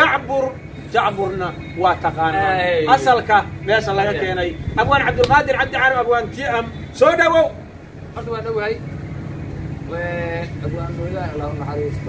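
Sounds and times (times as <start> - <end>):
man speaking: 0.0 - 8.8
steady low hum: 0.0 - 12.0.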